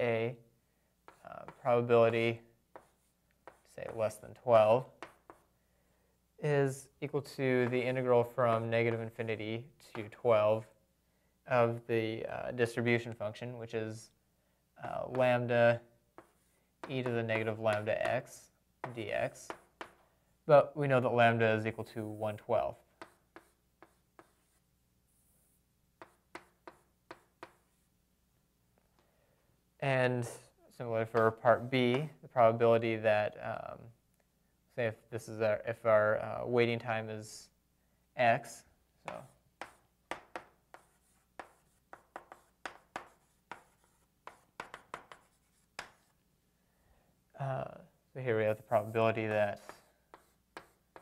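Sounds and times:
pen writing strokes: 0:02.7 - 0:04.0, 0:04.9 - 0:05.5, 0:16.2 - 0:17.9, 0:18.8 - 0:20.0, 0:22.9 - 0:27.9, 0:39.1 - 0:46.2, 0:49.6 - 0:51.0.

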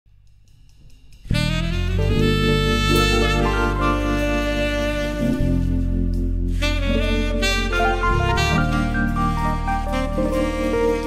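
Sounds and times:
drums and bass: 0:00.1 - 0:11.0
horn section playing: 0:01.4 - 0:11.0.

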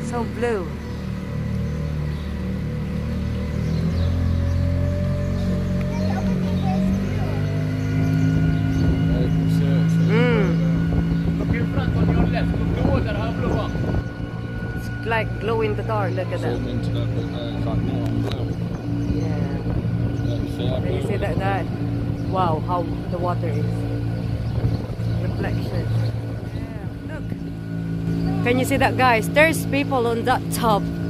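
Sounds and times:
boat engine running: 0:00.0 - 0:31.0.

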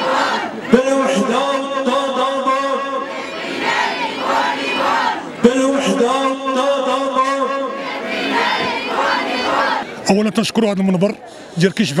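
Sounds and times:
crowd shouting slogans: 0:00.0 - 0:10.0.

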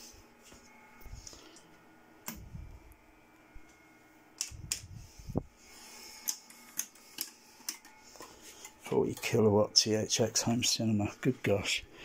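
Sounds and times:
low steady hum: 0:00.0 - 0:12.0.

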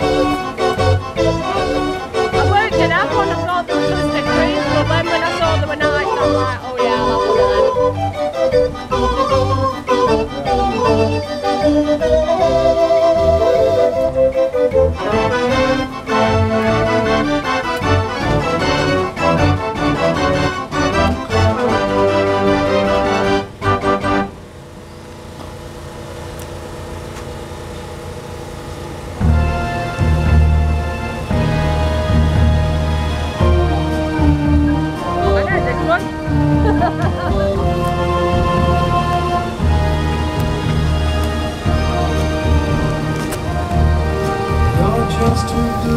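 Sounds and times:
dance organ playing a lively tune: 0:00.0 - 0:24.4, 0:29.2 - 0:45.9
heavy bass beat: 0:29.2 - 0:45.9.

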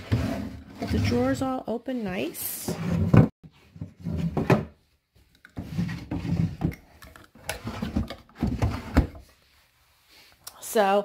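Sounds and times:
wooden drawers sliding: 0:00.0 - 0:01.5, 0:02.7 - 0:04.8, 0:05.6 - 0:06.8.

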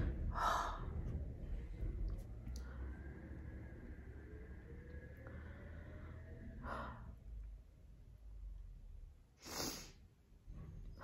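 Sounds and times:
noisy in-breath: 0:00.0 - 0:07.6, 0:09.4 - 0:10.2
quiet breathing: 0:00.0 - 0:08.4.

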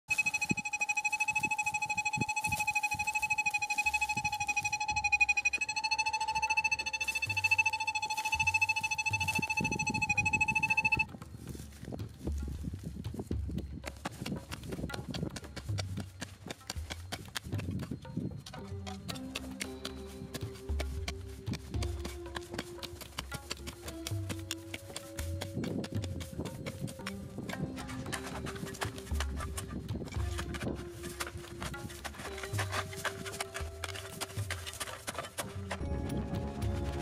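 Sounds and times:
metal detector pulsing tone: 0:00.1 - 0:13.0, 0:14.9 - 0:37.0
steps on stony ground: 0:00.1 - 0:37.0
handling clicks and thumps: 0:12.4 - 0:37.0.

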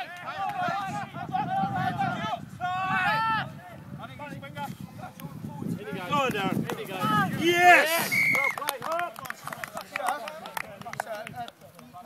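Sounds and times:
referee's whistle blast: 0:08.0 - 0:08.6.

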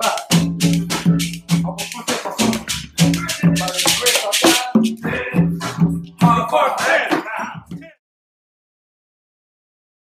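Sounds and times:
men singing: 0:00.0 - 0:08.0.

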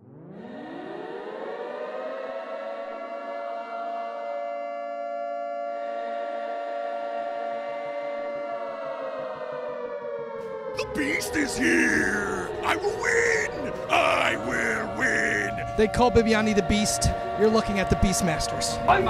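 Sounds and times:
air-raid siren wailing: 0:00.4 - 0:19.0.

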